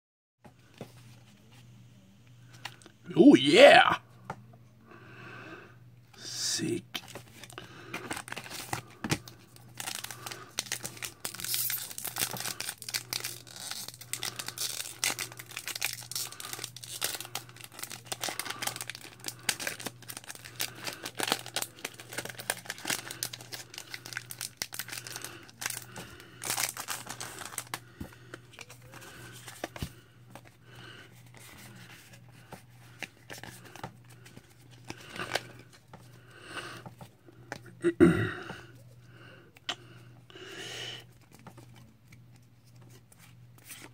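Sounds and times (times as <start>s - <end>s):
foil wrapper tearing and crinkling: 7.4s - 27.8s.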